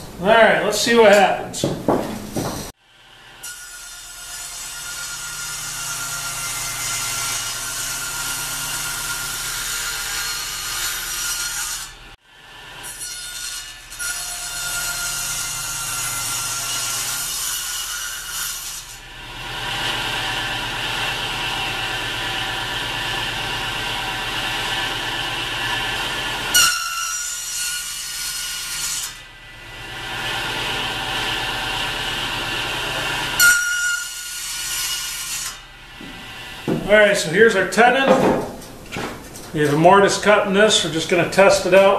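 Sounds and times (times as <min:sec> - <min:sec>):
table saw cutting wood: 0:00.0 - 0:38.6, 0:39.7 - 0:41.9.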